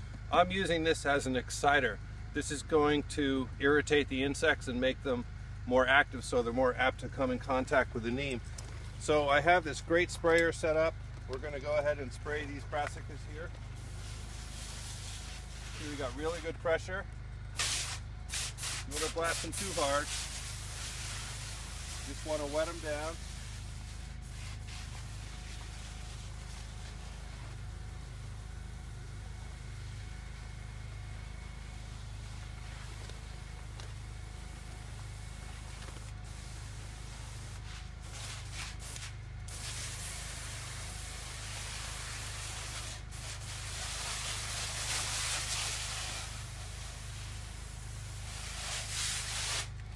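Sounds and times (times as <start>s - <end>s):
steady low rumble: 0.0s - 42.4s
pressure sprayer hissing: 13.0s - 16.6s, 17.5s - 49.9s.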